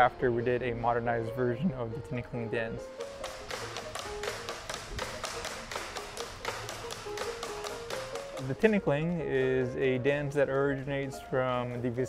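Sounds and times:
music playing: 0.0 - 12.0
bamboo poles knocking on tile: 3.0 - 8.7.

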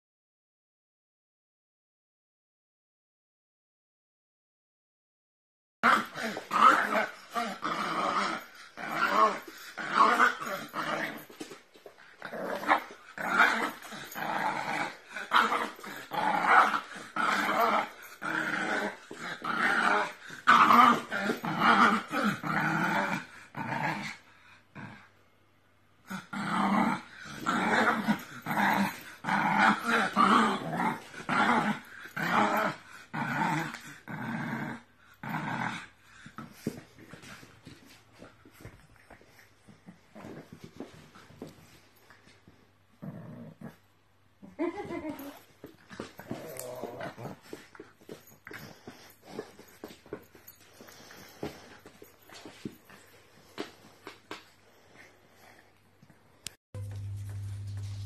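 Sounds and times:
dog play growling: 5.8 - 25.2, 26.0 - 58.0.

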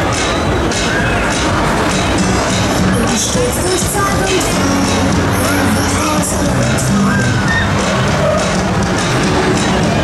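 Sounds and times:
loud music from sound system: 0.0 - 10.0
riders whooping and cheering: 5.3 - 8.6.

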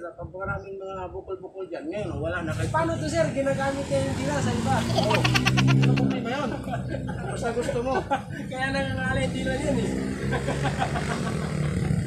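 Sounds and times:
vehicle engine humming: 2.5 - 12.0.

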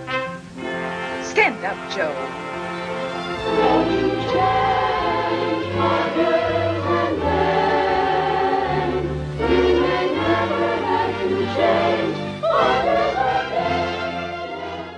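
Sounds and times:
choir singing held chords: 2.3 - 14.9.

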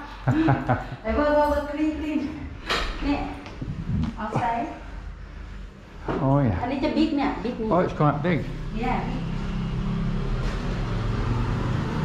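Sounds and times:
road noise: 6.7 - 12.0.

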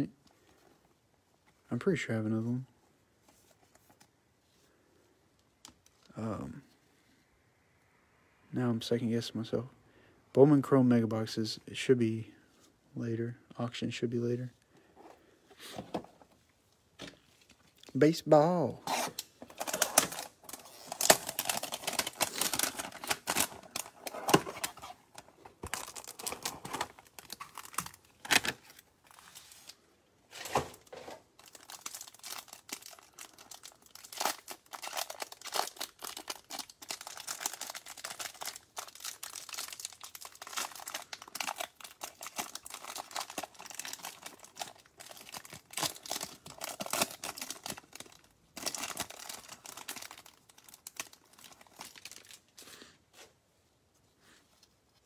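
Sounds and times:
cellophane wrapper crinkling: 18.9 - 29.8, 31.1 - 52.6.

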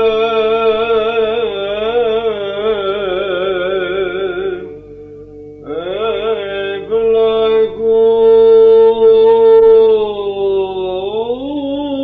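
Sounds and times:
chant drone note: 0.0 - 12.0
lead chanter singing ornamented melody: 0.0 - 12.0.

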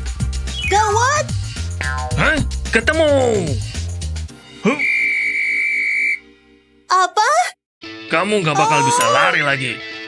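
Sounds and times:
police whistle blast: 4.7 - 6.3
soft background music: 7.9 - 10.0.

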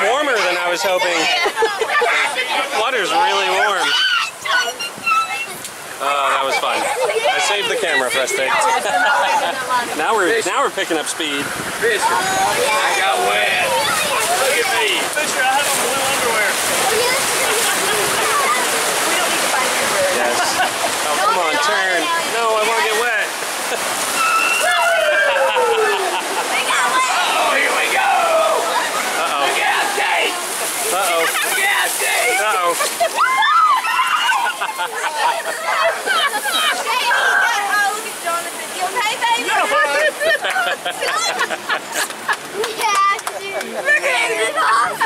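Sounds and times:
white water rushing and splashing: 0.0 - 45.0.

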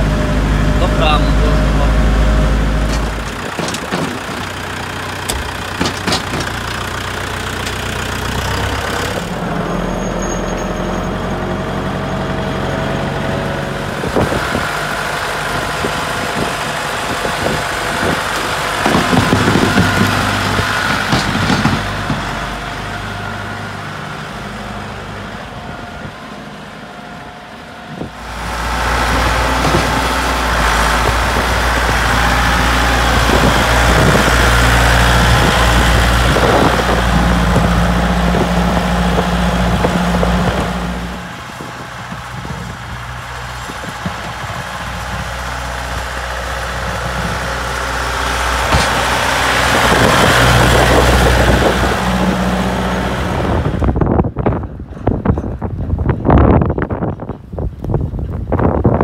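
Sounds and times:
tractor diesel engine running: 0.0 - 59.0.

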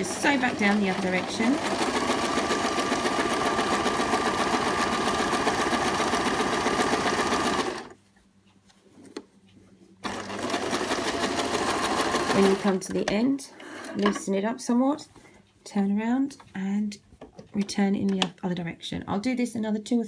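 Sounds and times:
sewing machine clattering: 0.0 - 8.0, 10.0 - 13.0.

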